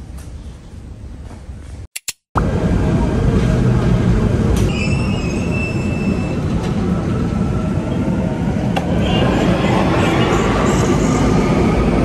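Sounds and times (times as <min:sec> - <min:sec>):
subway train rumble: 0:00.0 - 0:01.8, 0:02.4 - 0:12.0
high wheel squeal: 0:04.6 - 0:06.5.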